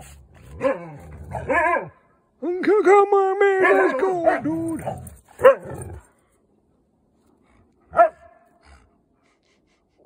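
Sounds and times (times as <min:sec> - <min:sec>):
dog barking and whining: 0:00.4 - 0:02.0, 0:03.6 - 0:06.0, 0:07.9 - 0:08.5.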